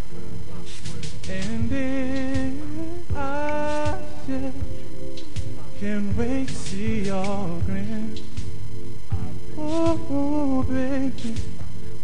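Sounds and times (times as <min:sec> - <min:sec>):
soft r and b backing track: 0:00.0 - 0:12.0.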